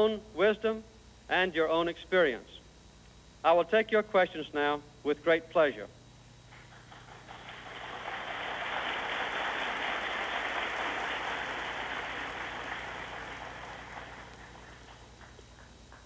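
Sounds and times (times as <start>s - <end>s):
large audience applauding: 6.5s - 16.0s.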